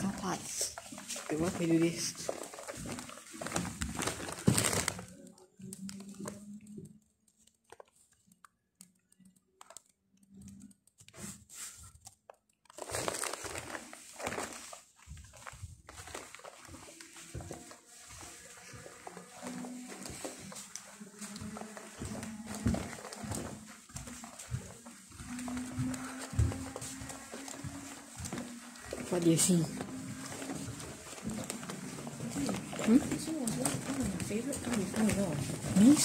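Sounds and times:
rustling and crinkling: 0.0 - 36.0.

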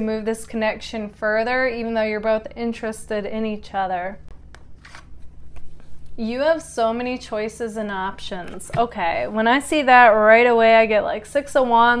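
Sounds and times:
card rustling: 4.3 - 6.1
card brushing on card: 4.8 - 5.9.

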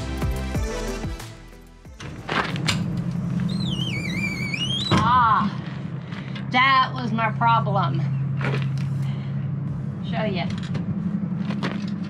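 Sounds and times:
music: 0.0 - 4.6.

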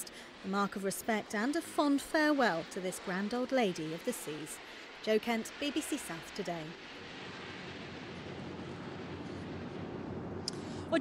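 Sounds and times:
low rumble: 6.8 - 11.0.

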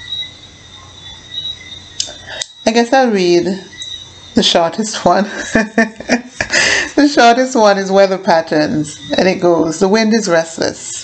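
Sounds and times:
faint background noise: 0.0 - 11.0
high-pitched whine: 0.0 - 11.0.

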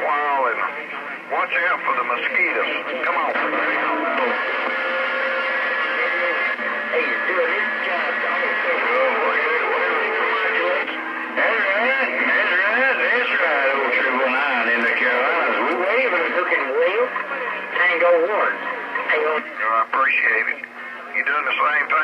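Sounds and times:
garbled radio voices: 0.0 - 22.0
steady radio tones: 0.0 - 22.0.

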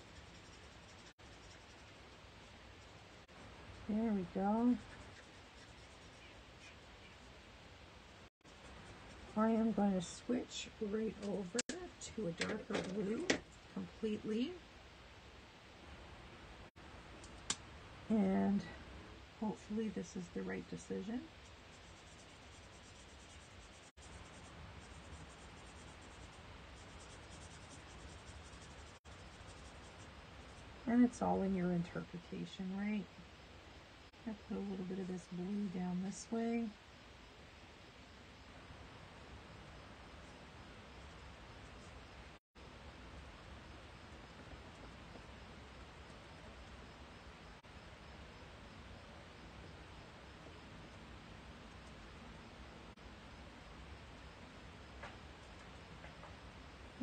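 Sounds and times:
marker scratching on paper: 3.9 - 7.3, 21.7 - 30.1.

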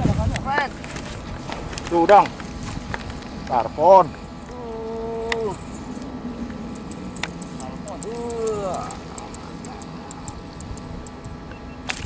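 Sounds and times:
person wordless vocal sounds: 4.5 - 5.6, 8.0 - 9.3.

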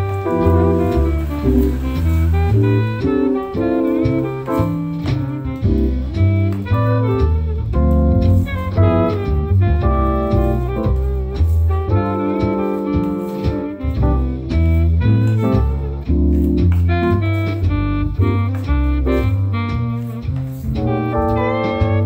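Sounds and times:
instrumental jazz music: 0.0 - 22.0.

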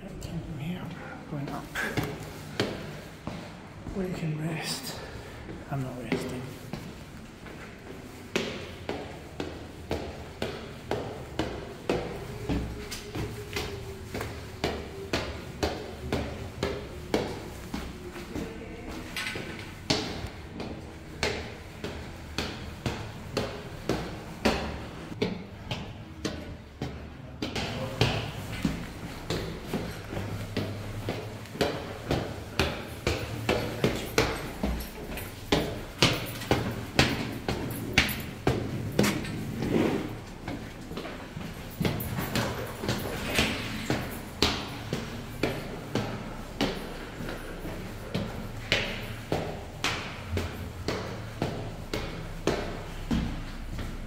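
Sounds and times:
footsteps on stone stairs: 0.1 - 54.0.

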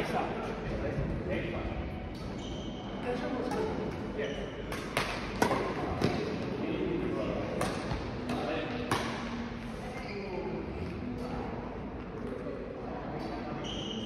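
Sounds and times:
rackets striking shuttlecock: 4.7 - 6.4, 7.6 - 9.4.

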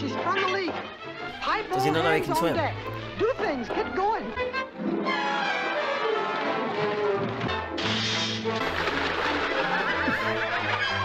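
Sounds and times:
orchestral music with brass: 0.8 - 11.0.

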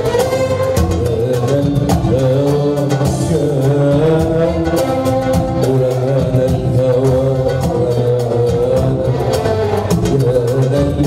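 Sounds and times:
percussion strikes: 0.0 - 11.0
man singing long note: 0.9 - 11.0.

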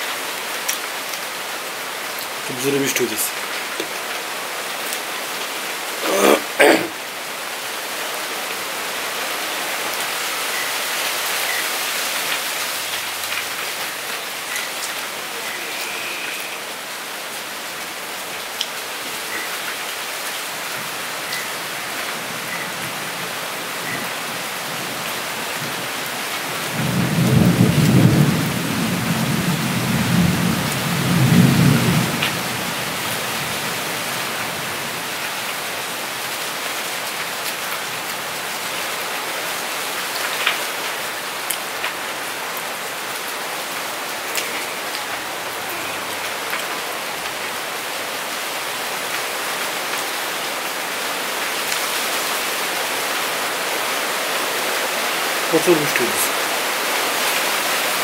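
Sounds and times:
steady rain-like hiss: 0.0 - 58.0.

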